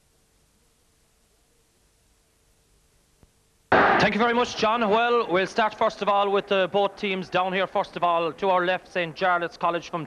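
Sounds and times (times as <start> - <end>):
faint steady hum: 0.0 - 10.0
recorded audio: 0.0 - 10.0.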